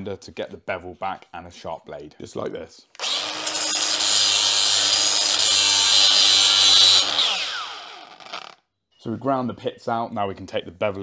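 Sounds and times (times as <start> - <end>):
angle grinder grinding metal: 3.0 - 8.6
grinder disc spinning down: 3.0 - 8.6.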